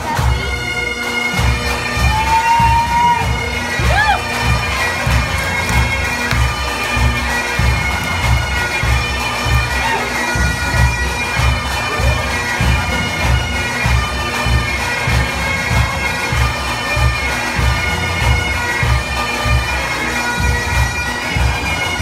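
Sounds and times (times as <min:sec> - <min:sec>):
bagpipes playing: 0:00.0 - 0:22.0.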